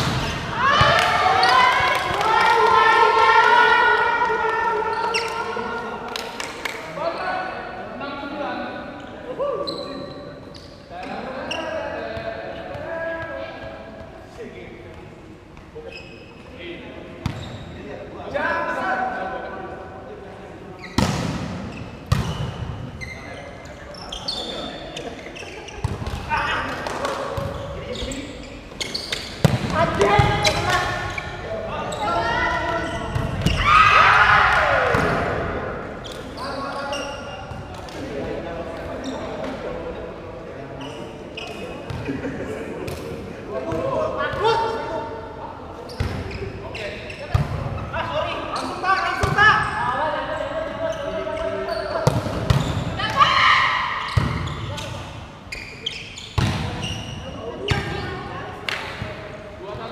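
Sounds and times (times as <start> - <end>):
players calling and shouting: 0.0 - 59.9.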